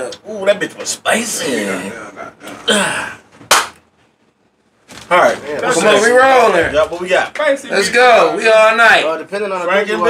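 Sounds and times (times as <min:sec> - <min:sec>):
sharp smack: 0:03.4 - 0:03.8.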